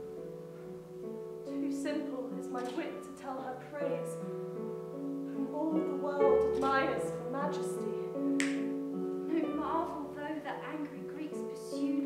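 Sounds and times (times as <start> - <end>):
piano playing slow held chords: 0.0 - 12.0
sharp click: 8.4 - 8.7.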